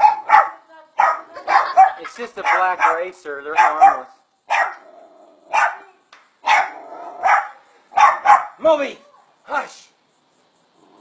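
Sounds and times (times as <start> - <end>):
small dog barking: 0.0 - 4.9, 5.5 - 8.6.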